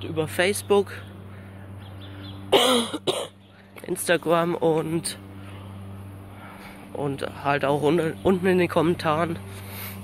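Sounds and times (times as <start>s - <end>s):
man coughing: 2.5s - 3.4s.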